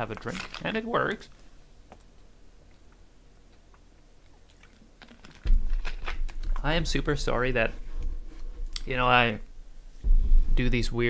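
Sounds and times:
loud thump near microphone: 0:10.0 - 0:10.7.

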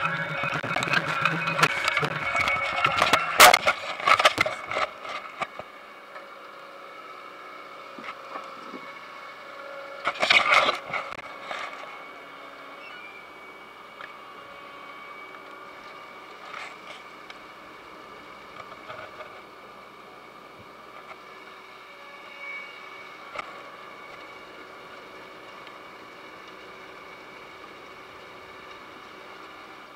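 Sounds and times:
potato harvester running: 0:00.0 - 0:29.9.

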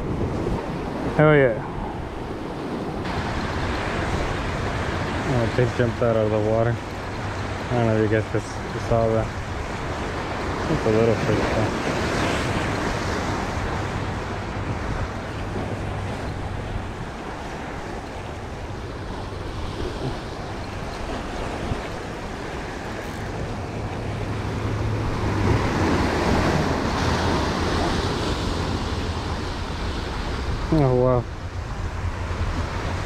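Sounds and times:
wind buffeting microphone: 0:00.0 - 0:33.0
surf breaking over rocks: 0:02.7 - 0:33.0.

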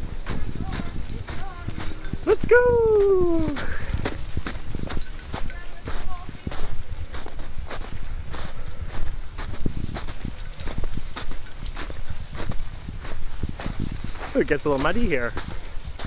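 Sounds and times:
footsteps crunching through snow: 0:00.0 - 0:16.0.

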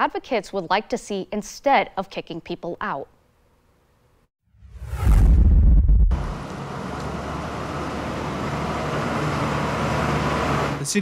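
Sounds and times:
whoosh with bass hit: 0:04.6 - 0:06.5.

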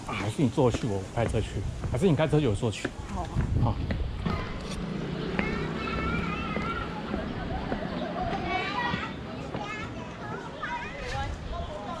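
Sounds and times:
children chattering and calling out: 0:00.0 - 0:01.2, 0:02.8 - 0:12.0.

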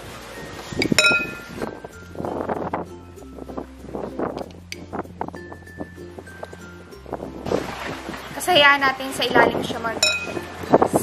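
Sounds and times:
background music: 0:00.0 - 0:11.0
metal spoon clinking glass: 0:00.8 - 0:01.6, 0:10.0 - 0:10.4.

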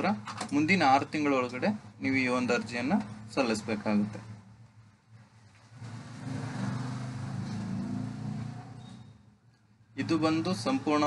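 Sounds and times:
vehicle engine passing by: 0:05.7 - 0:09.0.

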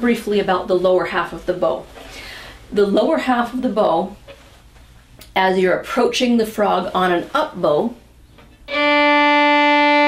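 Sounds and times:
violin long bowed note: 0:08.7 - 0:10.0.

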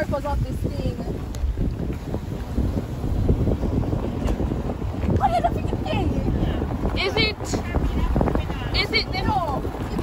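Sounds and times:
car driving slowly: 0:00.0 - 0:10.0
wind buffeting microphone: 0:00.0 - 0:10.0.

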